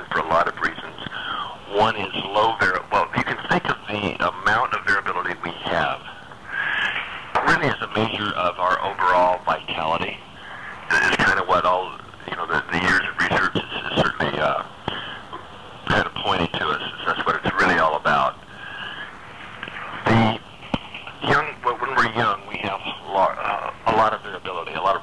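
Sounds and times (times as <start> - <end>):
telephone-quality voice talking: 0.0 - 25.0.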